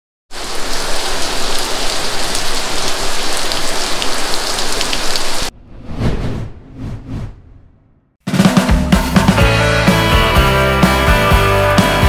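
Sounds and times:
steady rain falling: 0.3 - 5.5.

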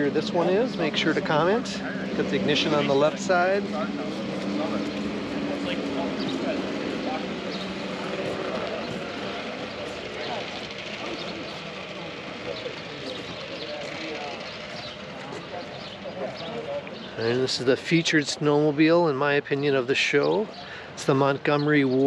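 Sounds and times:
background chatter: 0.0 - 22.0
steady engine drone: 0.0 - 22.0.

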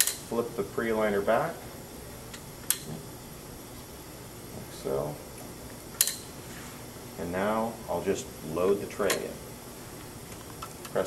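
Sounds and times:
steady low background hum: 0.0 - 11.0
sharp click: 6.0 - 6.3.

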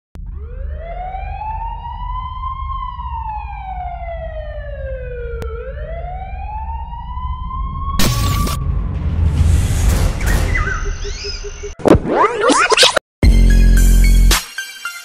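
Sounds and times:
siren wailing: 0.2 - 9.0
steady low rumble: 5.4 - 11.1.

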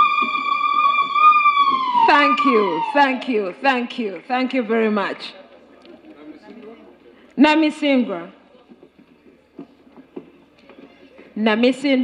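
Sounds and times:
faint crowd murmur: 0.0 - 12.0.

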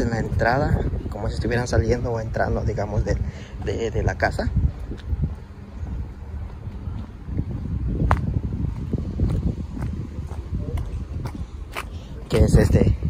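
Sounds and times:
wind buffeting microphone: 0.0 - 13.0.

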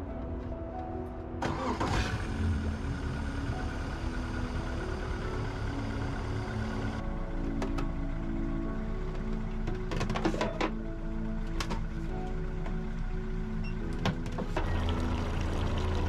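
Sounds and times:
background music: 0.0 - 16.0
outboard motor starting and idling: 1.4 - 16.0.

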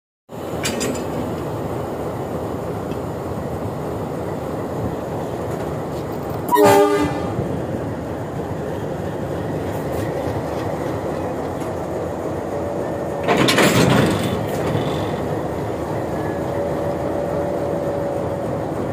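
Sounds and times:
locomotive engine running: 0.3 - 18.9.

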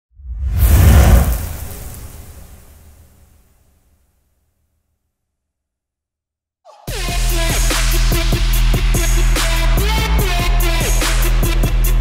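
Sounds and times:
whoosh with deep rumble: 0.1 - 2.8.

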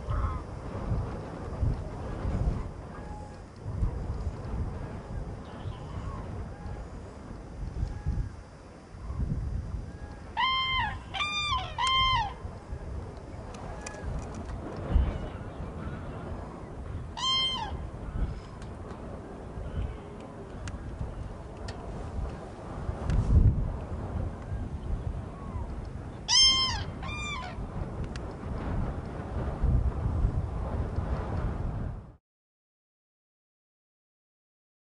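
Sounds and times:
cranes trumpeting calls: 0.0 - 0.5, 9.9 - 12.6, 17.1 - 18.4, 26.3 - 27.6
wind rumble on microphone: 0.0 - 32.2.

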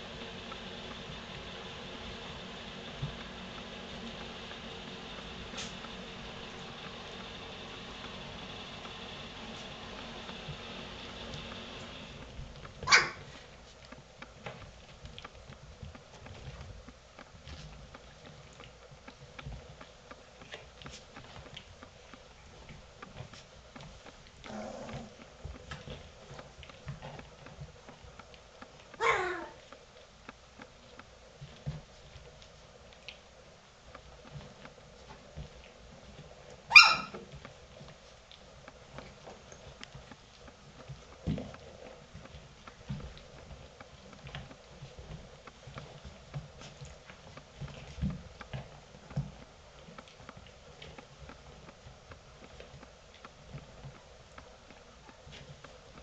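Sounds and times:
puppies scratching on bedding: 0.1 - 56.0
puppy yip: 12.8 - 13.3, 29.0 - 29.6, 36.7 - 37.2.

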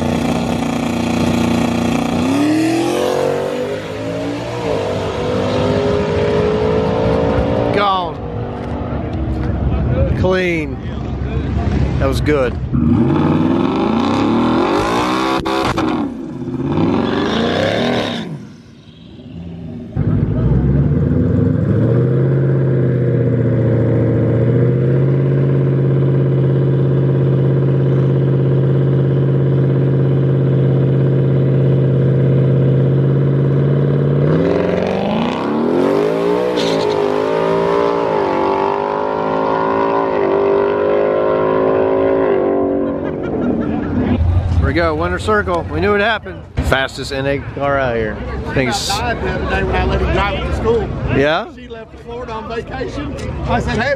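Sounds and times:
car engine revving and accelerating: 0.0 - 9.0, 12.7 - 18.6, 19.8 - 46.0.

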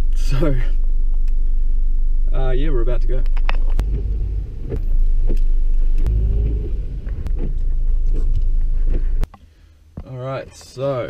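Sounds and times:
car engine low rumble: 0.0 - 9.3.

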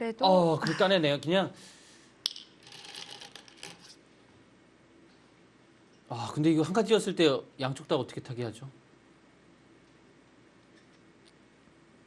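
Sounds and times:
game stones clinking in a bowl: 2.3 - 3.9.

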